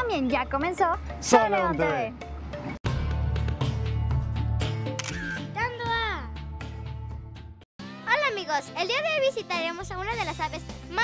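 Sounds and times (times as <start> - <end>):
background music: 0.0 - 11.0
camera shutter click: 4.9 - 5.4.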